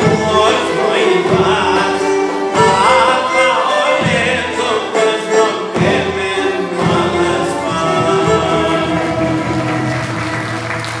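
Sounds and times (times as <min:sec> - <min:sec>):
person singing: 0:00.0 - 0:09.7
folk ensemble of strings: 0:00.0 - 0:11.0
applause: 0:09.4 - 0:11.0.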